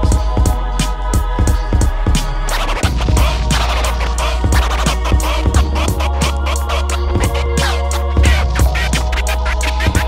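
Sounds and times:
hip-hop beat with kick drum: 0.0s - 10.0s
vinyl record scratching: 2.1s - 10.0s.

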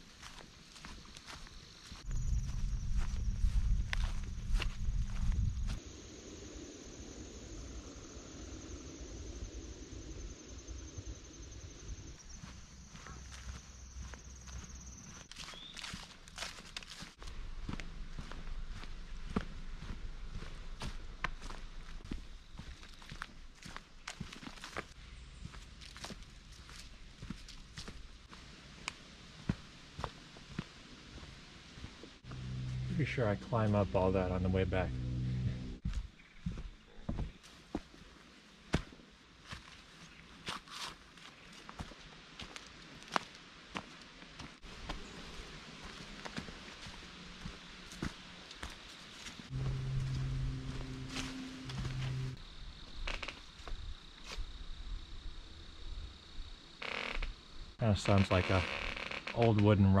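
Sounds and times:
footsteps on dirt trail: 0.0s - 5.8s, 12.2s - 34.8s, 35.8s - 52.4s
loud low rumble: 32.2s - 35.9s, 49.5s - 52.4s
steady high whine: 32.2s - 36.0s, 49.3s - 52.5s.

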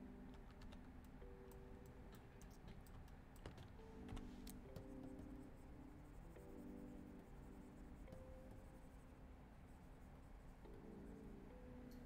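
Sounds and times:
soft background music: 0.0s - 12.0s
stylus scratching on tablet: 4.8s - 11.5s.

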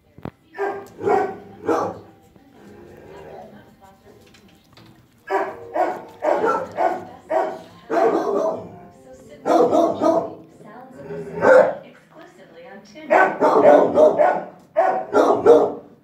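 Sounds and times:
dog barking: 0.6s - 2.2s, 5.3s - 8.8s, 9.4s - 10.4s, 11.3s - 11.8s, 13.1s - 16.0s.

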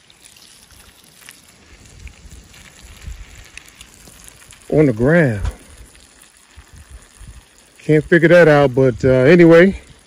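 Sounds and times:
wind rumble on microphone: 1.7s - 4.7s, 6.6s - 10.0s.

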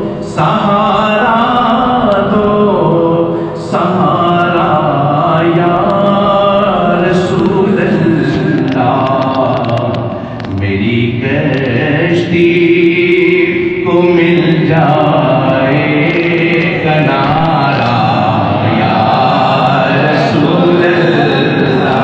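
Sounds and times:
voices chanting melodic lines: 12.6s - 22.0s.

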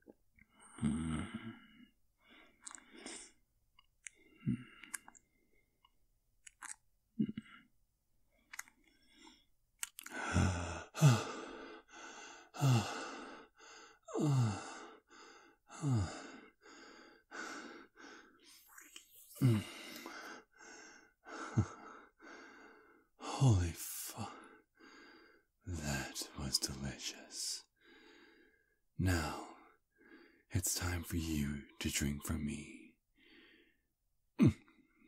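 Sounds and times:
wet mouth clicks and slurps: 2.6s - 2.9s, 4.8s - 5.3s, 6.4s - 6.8s, 8.5s - 8.9s, 9.8s - 10.2s
man sighing heavily: 10.0s - 13.4s, 19.3s - 20.4s.

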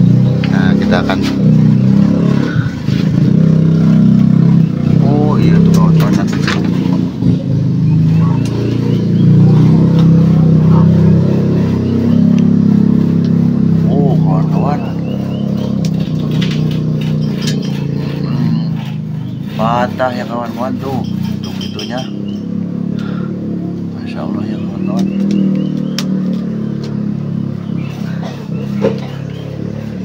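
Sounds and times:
engine running: 0.0s - 30.0s
faint voices: 4.4s - 22.3s.

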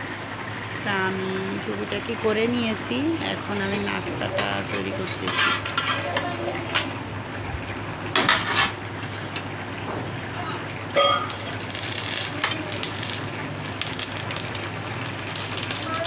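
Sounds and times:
metal utensil clinking on steel pan: 3.5s - 6.3s.

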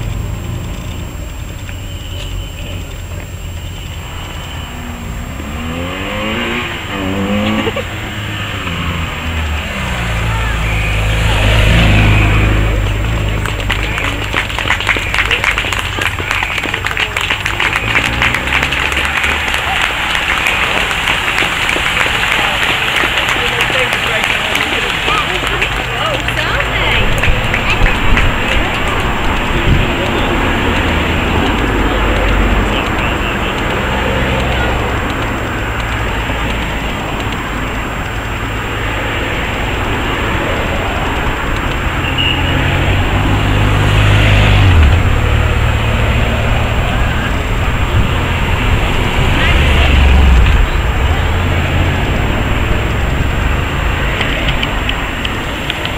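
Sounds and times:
tyre noise: 0.0s - 55.9s
vehicles driving past: 0.0s - 55.9s.

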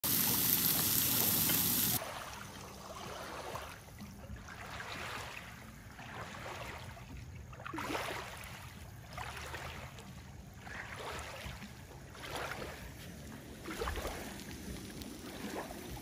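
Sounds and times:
loud steady hiss: 0.0s - 2.0s
waves lapping on sandy shore: 0.1s - 16.0s.

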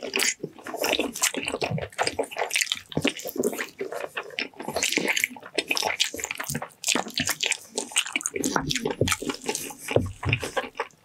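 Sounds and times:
wet chewing and lip-smacking: 0.0s - 11.0s.

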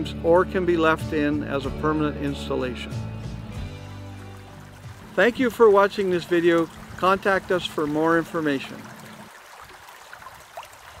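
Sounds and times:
creek trickling: 2.9s - 11.0s.

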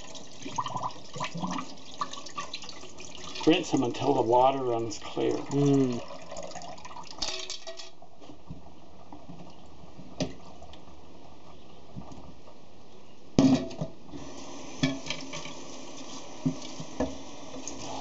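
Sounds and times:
water running into a sink: 0.0s - 7.7s, 14.2s - 18.0s.

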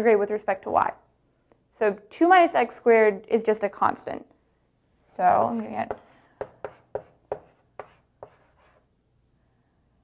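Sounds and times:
chalk tapping and scratching: 5.4s - 8.9s.

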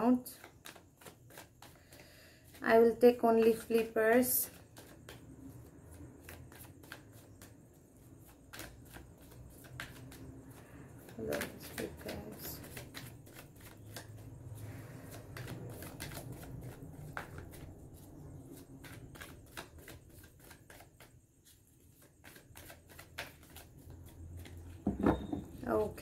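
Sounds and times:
cards being shuffled: 0.2s - 24.8s.

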